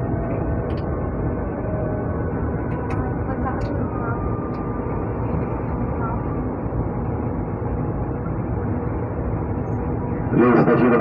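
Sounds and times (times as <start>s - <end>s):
train wheels and motors rumbling: 0.0s - 11.0s.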